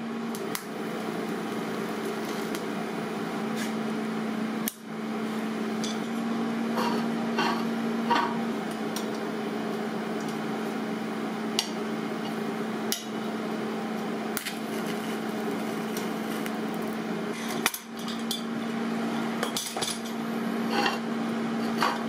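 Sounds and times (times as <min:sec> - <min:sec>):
electrical hum: 0:00.0 - 0:22.0.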